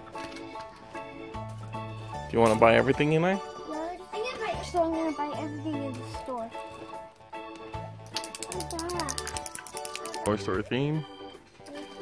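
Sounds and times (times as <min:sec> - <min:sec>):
background music: 0:00.0 - 0:12.0
rapid ratchet-like clicking: 0:08.0 - 0:10.4.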